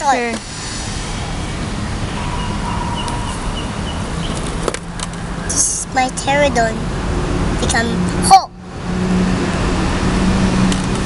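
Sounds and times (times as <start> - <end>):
outdoor background noise: 0.0 - 11.0
faint bird calls: 2.1 - 4.4.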